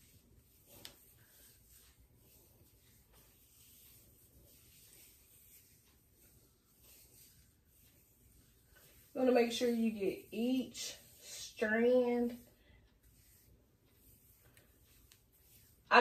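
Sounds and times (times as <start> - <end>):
fingers rustling through hair: 0.0 - 16.0.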